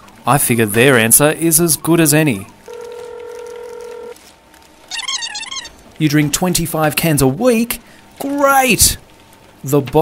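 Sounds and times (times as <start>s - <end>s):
telephone ringing tone: 2.7s - 4.2s.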